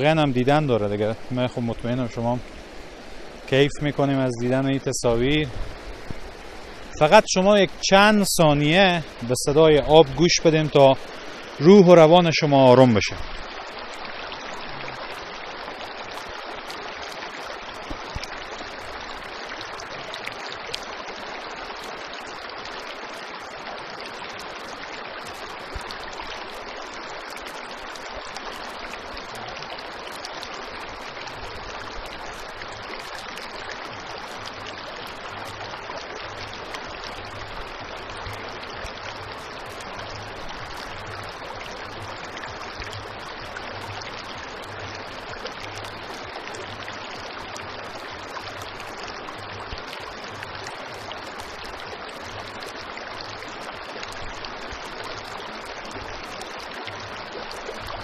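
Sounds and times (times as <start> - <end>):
stream rushing over stones: 0.0 - 58.0.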